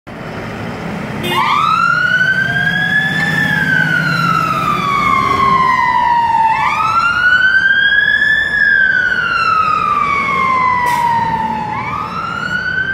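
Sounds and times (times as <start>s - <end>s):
fire engine wail siren: 1.1s - 12.9s.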